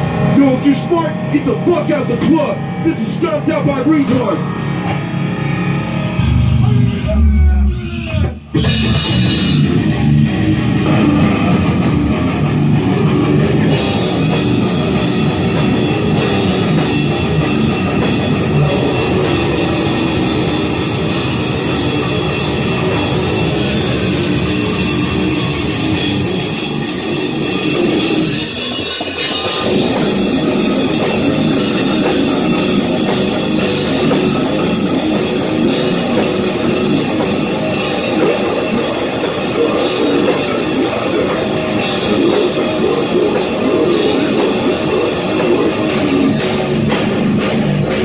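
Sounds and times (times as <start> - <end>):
distorted electric guitar: 0.0 - 48.0
drum kit with cymbals: 8.0 - 48.0.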